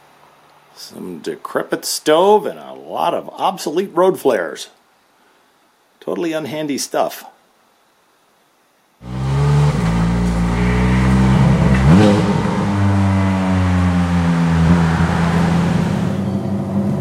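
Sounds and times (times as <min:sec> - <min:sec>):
car engine running: 0:09.0 - 0:17.0.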